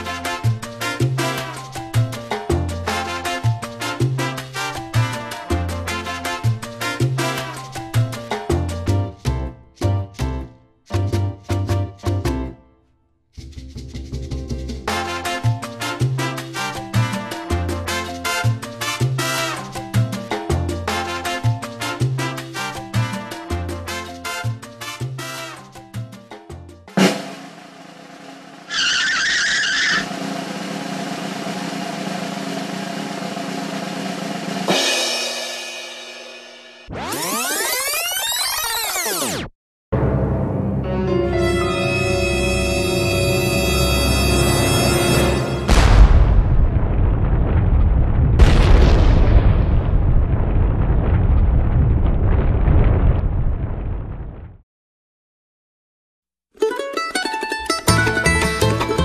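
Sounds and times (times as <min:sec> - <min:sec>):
short high screech: 0:28.7 - 0:30.1
swooping sound: 0:36.9 - 0:39.4
sudden hit: 0:45.4 - 0:54.6
loud deep rumbling: 0:45.7 - 0:54.6.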